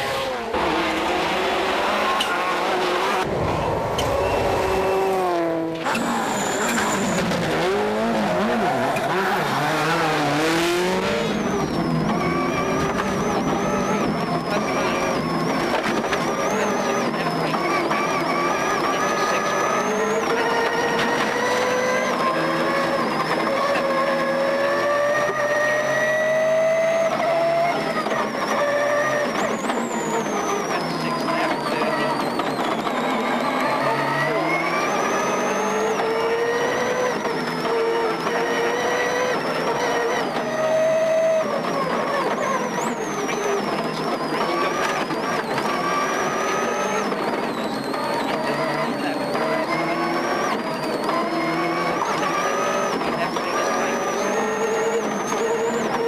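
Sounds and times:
rally car engine revving: 0.0 - 56.0.

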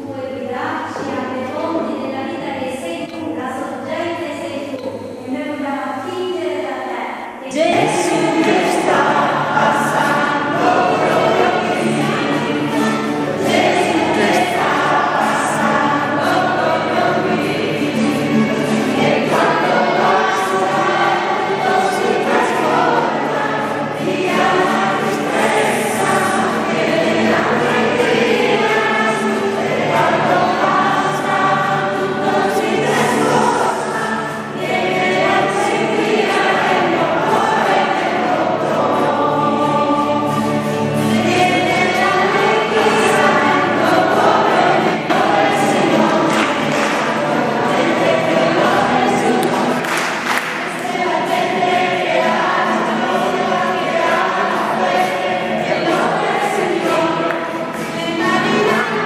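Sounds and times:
congregation singing a hymn: 7.2 - 59.0.

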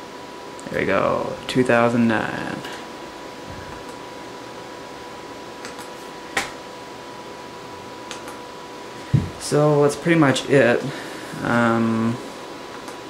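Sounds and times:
computer fans whirring: 0.0 - 13.0
sharp click: 8.1 - 8.4.

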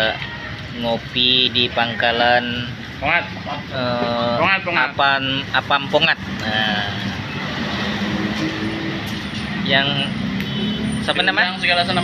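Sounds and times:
man speaking: 0.0 - 7.2, 9.6 - 10.3, 11.0 - 12.0
engine rumble: 0.0 - 12.0
street noise with low hum: 0.0 - 12.0.

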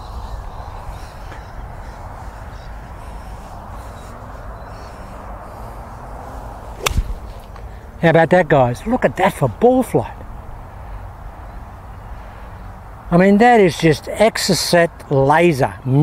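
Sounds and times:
steady low background noise: 0.0 - 16.0
golf club striking ball: 6.8 - 7.7.

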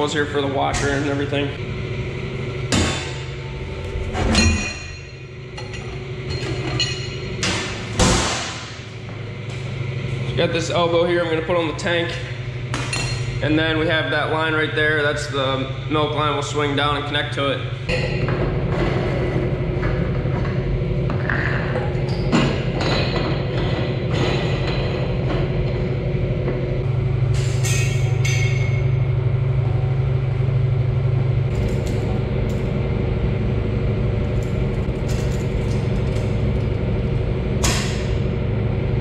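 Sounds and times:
steady low machine hum: 0.0 - 39.0.

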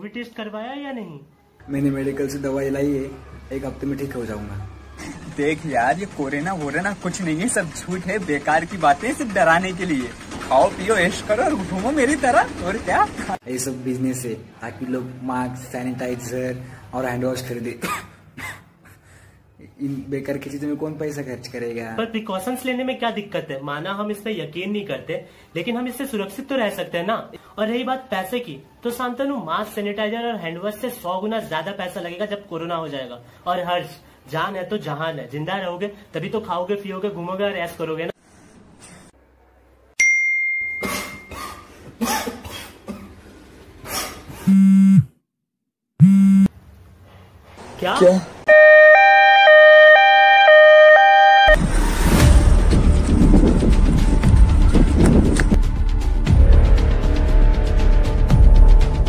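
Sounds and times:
man coughing: 17.8 - 19.0, 40.8 - 43.2
chime-like ding: 40.0 - 41.3
electronic buzz: 44.5 - 45.1, 46.0 - 46.5.

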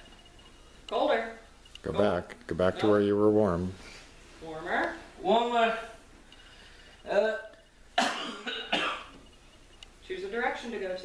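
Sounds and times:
person coughing: 8.0 - 9.2.

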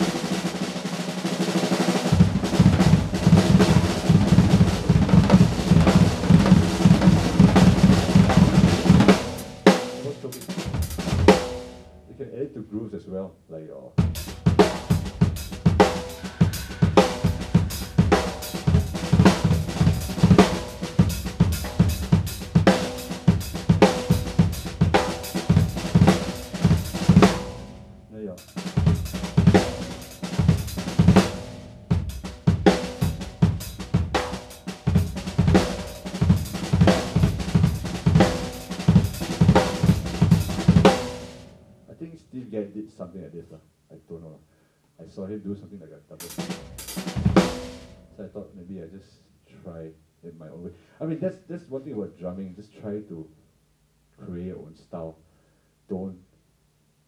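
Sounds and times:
drum kit playing fast: 0.0 - 11.9, 14.0 - 41.6, 46.2 - 48.0.

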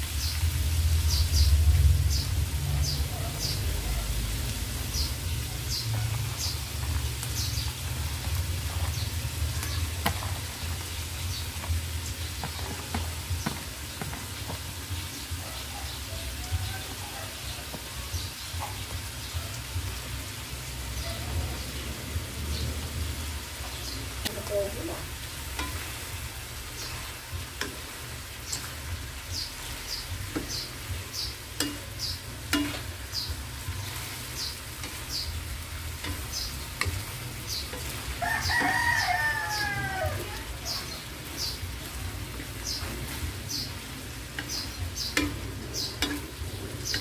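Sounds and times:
light frying sizzle: 0.0 - 47.0
spatula scraping wok: 2.8 - 18.9, 22.6 - 47.0
rooster crowing: 15.5 - 17.4, 38.2 - 40.5.

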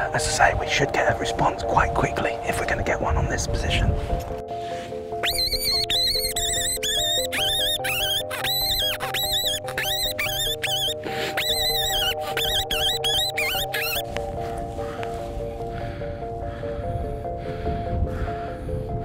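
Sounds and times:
background music with held notes: 0.0 - 19.0
fox call squeals: 5.2 - 14.1.

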